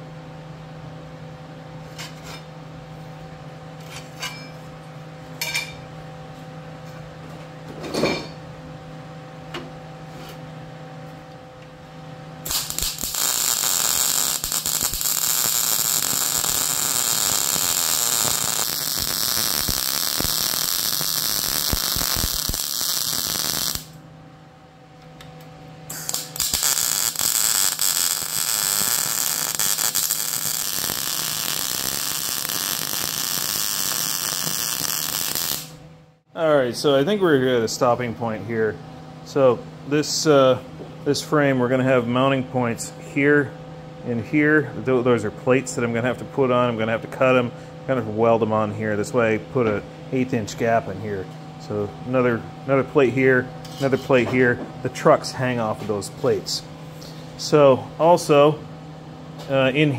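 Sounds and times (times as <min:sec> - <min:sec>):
electrical hum: 0:00.0 - 0:59.9
welding arc crackling: 0:12.4 - 0:24.0, 0:25.9 - 0:35.8.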